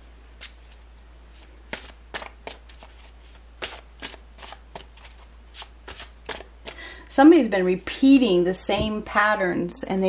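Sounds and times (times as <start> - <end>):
cards shuffled by hand: 0.4 - 6.8.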